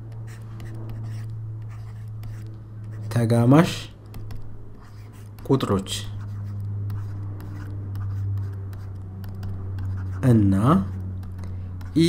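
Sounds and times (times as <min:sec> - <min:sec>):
low electrical hum: 0:00.0 - 0:12.0
stylus scratching on pen tablet: 0:00.0 - 0:12.0.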